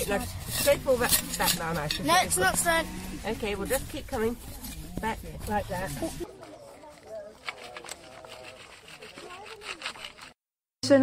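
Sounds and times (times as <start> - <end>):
tool scraping dry soil: 0.0 - 10.4.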